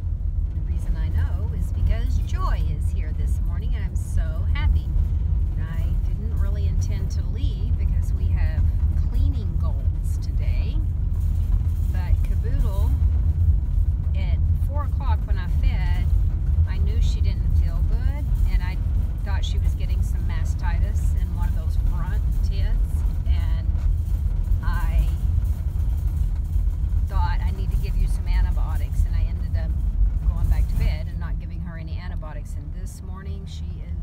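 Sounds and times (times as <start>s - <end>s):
car engine rumble: 0.0s - 34.0s
woman talking: 0.6s - 5.0s, 5.6s - 10.9s, 11.9s - 13.0s, 14.2s - 16.1s, 16.7s - 23.7s, 24.6s - 25.2s, 27.1s - 34.0s.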